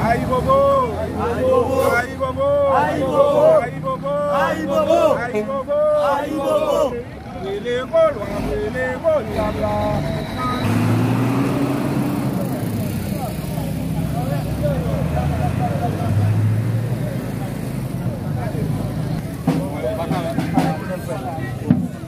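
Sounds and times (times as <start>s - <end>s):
crowd chatter: 0.0s - 22.0s
vehicle engine humming: 0.0s - 22.0s.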